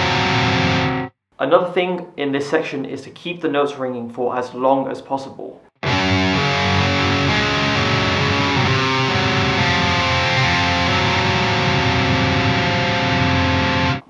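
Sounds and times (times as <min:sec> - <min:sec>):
distorted electric guitar picking: 0:00.0 - 0:01.1, 0:05.8 - 0:14.0.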